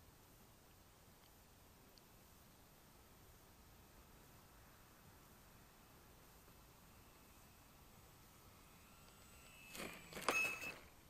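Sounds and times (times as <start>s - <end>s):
faint thin whine: 0.0s - 11.0s.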